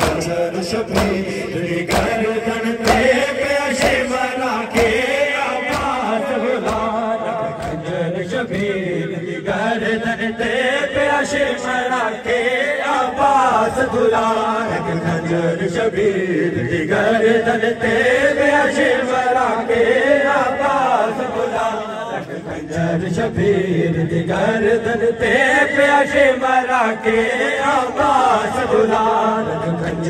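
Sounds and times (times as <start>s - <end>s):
men chanting in unison: 0.0s - 30.0s
rhythmic chest-beating: 0.0s - 30.0s.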